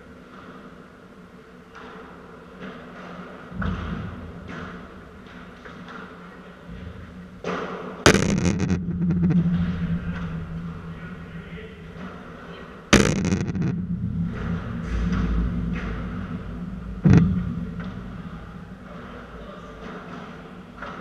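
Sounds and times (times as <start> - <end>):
steady low hum: 3.4 - 21.0
padel ball impacts: 8.1 - 10.2, 13.0 - 19.1.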